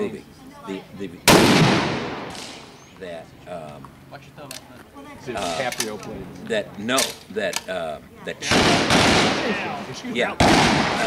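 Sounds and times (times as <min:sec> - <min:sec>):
rifle shot: 0:01.3 - 0:02.8, 0:08.4 - 0:09.6, 0:10.4 - 0:11.0.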